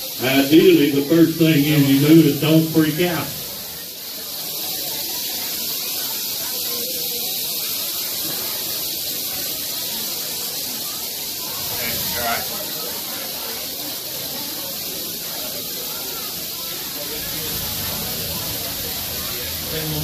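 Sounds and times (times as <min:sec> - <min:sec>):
rattlesnakes rattling: 0:00.0 - 0:20.0.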